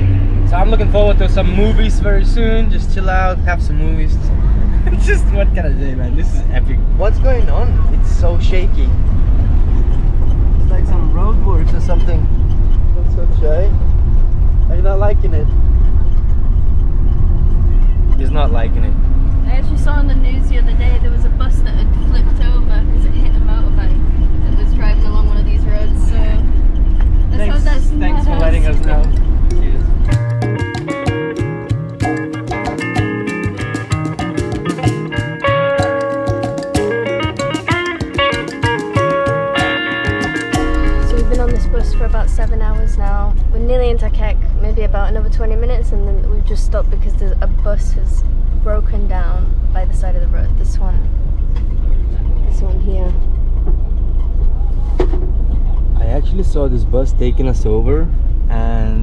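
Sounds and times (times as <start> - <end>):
voices: 0.0 - 9.8, 17.5 - 30.2, 37.6 - 53.3, 54.6 - 59.0
bus rumbling on rough road: 0.0 - 59.0
guitar music: 27.3 - 44.2.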